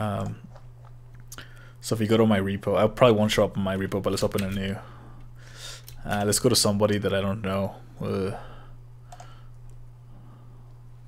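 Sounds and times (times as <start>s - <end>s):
man talking: 0.0s - 0.5s, 1.8s - 4.9s, 6.0s - 8.5s
steady low hum: 0.0s - 11.0s
faint computer clicks: 9.1s - 9.8s.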